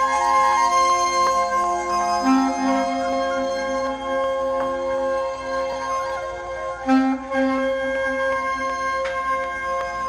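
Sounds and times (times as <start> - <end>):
saxophone playing long notes: 0.0 - 10.0.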